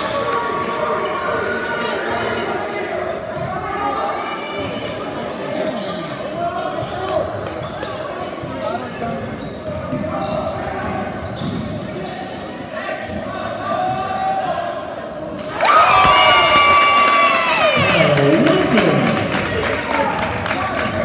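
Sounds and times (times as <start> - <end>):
spectators chattering: 16.5 - 21.0.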